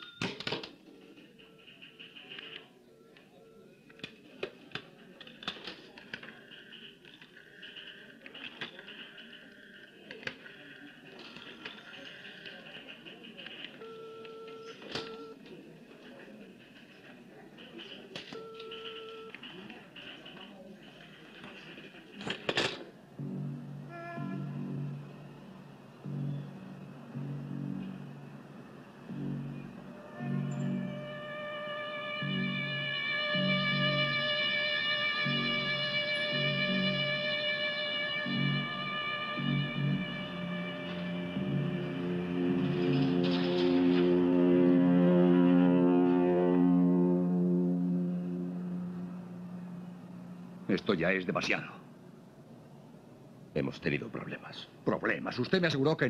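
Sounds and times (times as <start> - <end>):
film score with pulsing rhythm: 0.0 - 3.1, 3.9 - 15.2, 23.0 - 51.8
short electronic beeps: 13.8 - 15.4.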